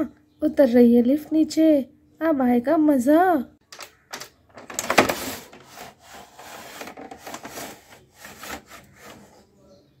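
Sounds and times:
plastic toy elevator scraping: 4.6 - 9.6.

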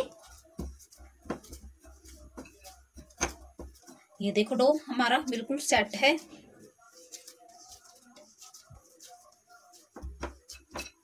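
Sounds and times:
hands kneading dough: 0.0 - 11.0.

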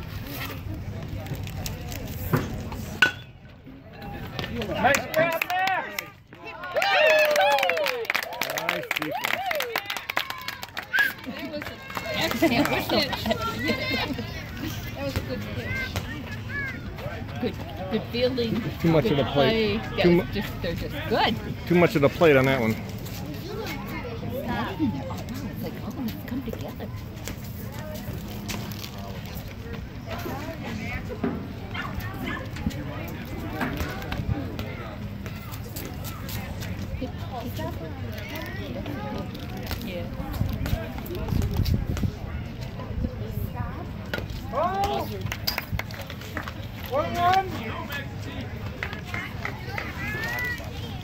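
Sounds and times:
outdoor background noise: 0.0 - 51.0.

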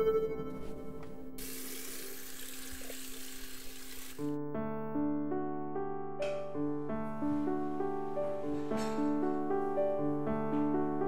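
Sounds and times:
piano music: 0.0 - 3.6, 4.2 - 11.0
tap running water: 1.4 - 4.4.

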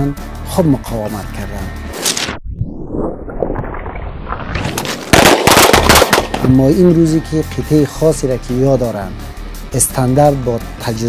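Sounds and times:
automatic gunfire: 5.0 - 6.5.

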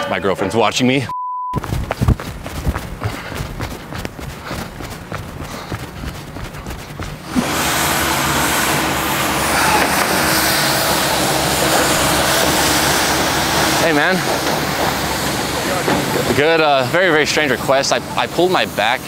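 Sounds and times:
vehicle engine low hum: 1.6 - 16.4
street traffic noise: 1.7 - 19.0.

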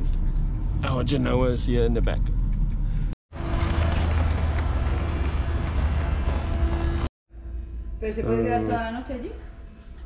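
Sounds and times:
van engine rumble: 0.0 - 7.1.

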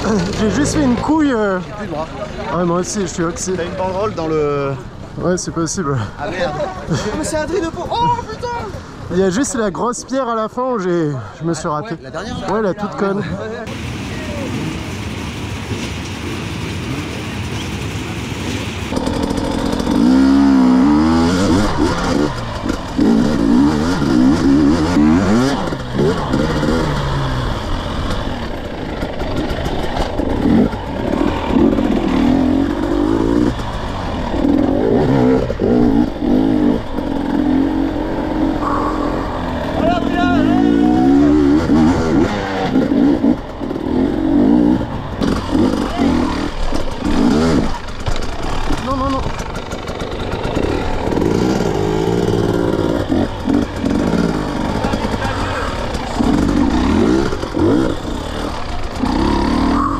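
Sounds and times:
two-stroke motorcycle engine revving: 0.0 - 5.1, 13.7 - 59.9.

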